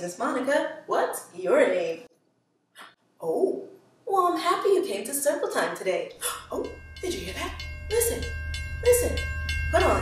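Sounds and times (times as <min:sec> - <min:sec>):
faint held tone: 0:06.1 - 0:10.0
train low rumble: 0:06.4 - 0:10.0.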